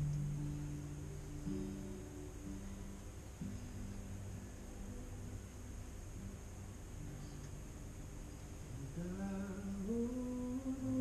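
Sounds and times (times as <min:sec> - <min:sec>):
person humming a slow melody: 0:00.0 - 0:05.6, 0:08.7 - 0:11.0.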